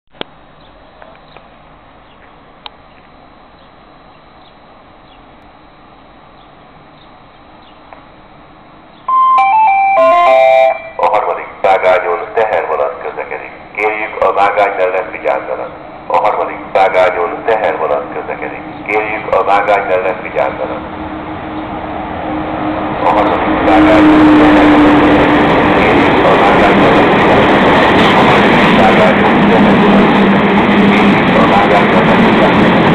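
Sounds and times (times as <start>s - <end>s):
electric locomotive hum: 0.2s - 32.9s
announcement over loudspeakers: 9.1s - 20.9s, 23.0s - 24.8s, 25.6s - 27.3s, 28.2s - 29.9s, 30.8s - 32.9s
train wheels on rails: 20.8s - 32.9s.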